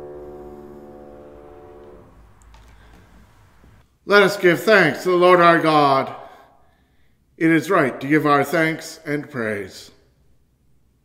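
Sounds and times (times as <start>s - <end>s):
piano chord ringing: 0.0s - 2.9s.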